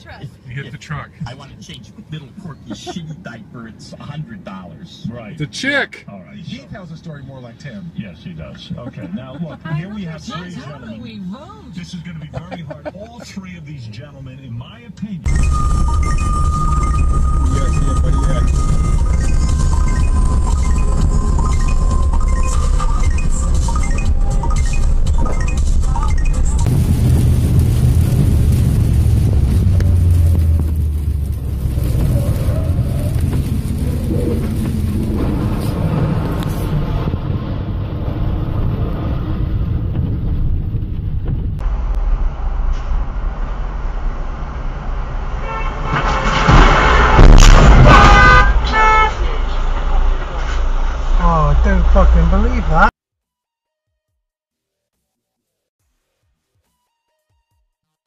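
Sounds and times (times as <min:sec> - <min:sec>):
road and engine rumble: 0:00.0 - 0:53.0
vehicle horn honking: 0:45.4 - 0:49.6.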